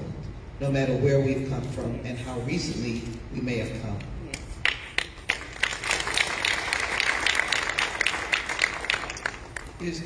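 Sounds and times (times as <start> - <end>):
audience applause: 4.8 - 9.8.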